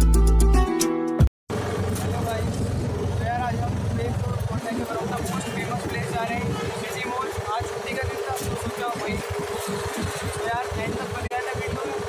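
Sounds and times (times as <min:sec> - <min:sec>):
background music: 0:00.0 - 0:01.3
engine and road rumble: 0:01.5 - 0:12.0.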